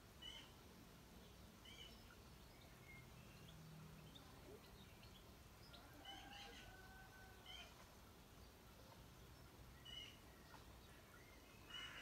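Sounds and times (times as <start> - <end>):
faint high-pitched animal calls: 6.0 - 7.8.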